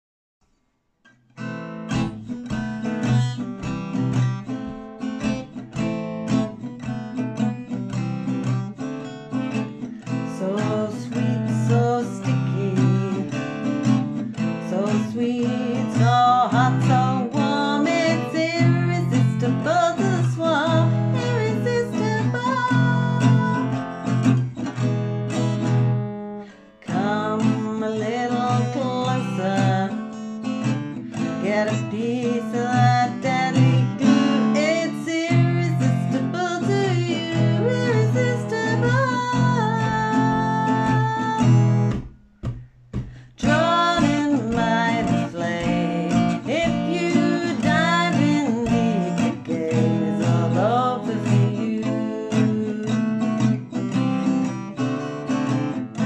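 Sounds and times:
acoustic guitar strumming: 0:01.1 - 0:56.0.

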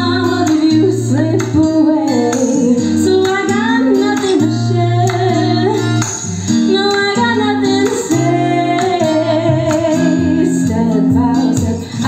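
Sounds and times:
woman singing pop ballad: 0:00.0 - 0:12.0.

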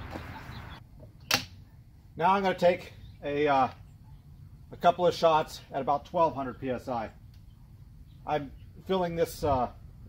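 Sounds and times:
sharp click: 0:01.2 - 0:01.5.

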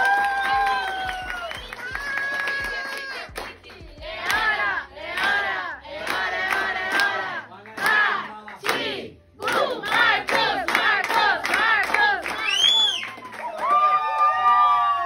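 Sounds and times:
people clapping along: 0:00.0 - 0:15.0
group singing a birthday song: 0:03.3 - 0:12.4.

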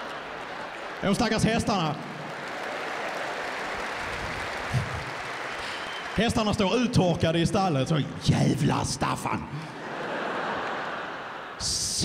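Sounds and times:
audience applauding: 0:00.0 - 0:07.3, 0:09.9 - 0:11.6
audience laughing: 0:09.5 - 0:11.7.

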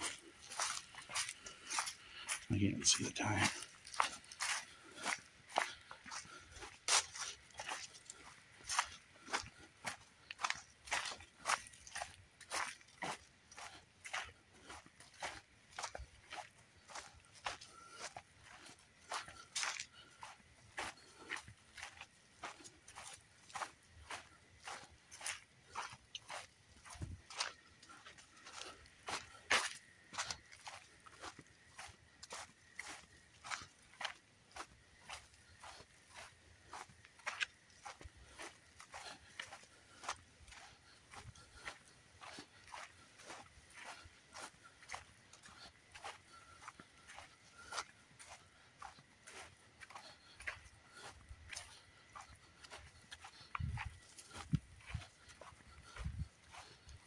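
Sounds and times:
footsteps crunching on leaves: 0:00.0 - 0:57.0.

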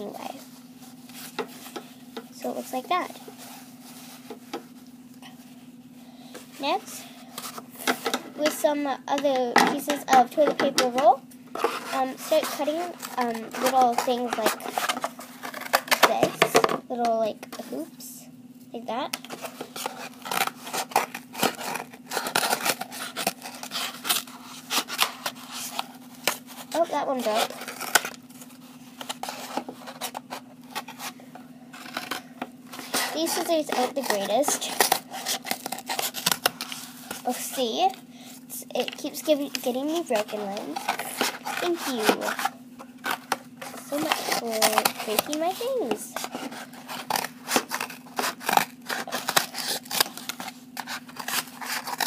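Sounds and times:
scissors cutting cardboard tube: 0:11.6 - 0:16.3, 0:19.2 - 0:28.2, 0:31.8 - 0:38.0, 0:38.8 - 0:52.0.

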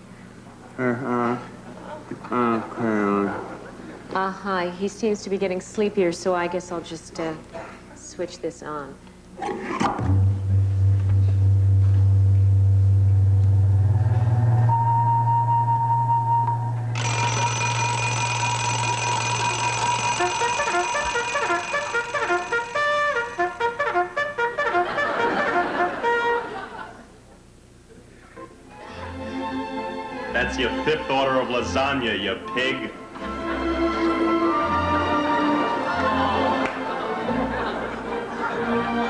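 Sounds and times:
low electronic hum: 0:08.2 - 0:28.7
steady high tone: 0:10.1 - 0:23.8
cluster of high sustained tones: 0:14.5 - 0:23.6.

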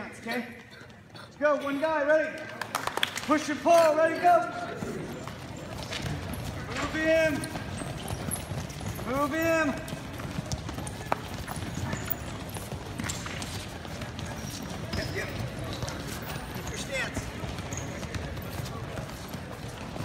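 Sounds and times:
brief voices in a gym: 0:00.0 - 0:20.0
shoes squeaking on foam mats: 0:04.0 - 0:20.0.

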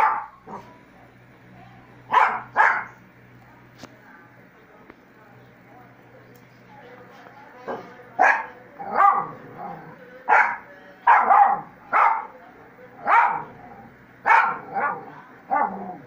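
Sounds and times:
small dog barking: 0:00.0 - 0:00.7, 0:02.1 - 0:03.0, 0:08.2 - 0:09.4, 0:10.3 - 0:12.4, 0:13.0 - 0:13.6, 0:14.2 - 0:16.0.

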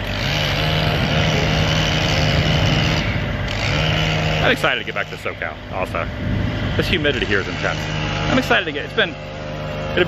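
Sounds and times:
small engine running at high speed: 0:00.0 - 0:10.0.

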